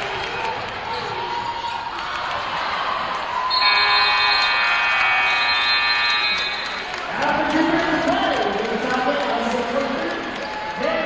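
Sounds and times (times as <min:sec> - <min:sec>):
gym crowd noise: 0:00.0 - 0:11.0.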